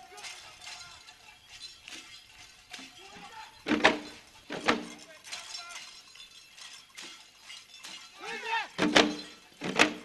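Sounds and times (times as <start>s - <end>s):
jingling: 0.0s - 10.0s.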